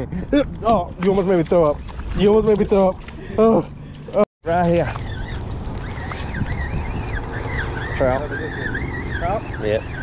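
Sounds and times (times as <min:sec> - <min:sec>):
wind rumble on microphone: 0:04.4 - 0:10.0
distant siren wailing: 0:04.8 - 0:10.0.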